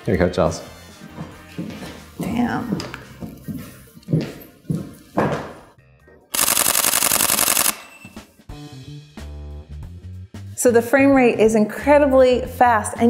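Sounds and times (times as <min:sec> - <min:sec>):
camera shutter burst clicks: 0:06.3 - 0:08.1.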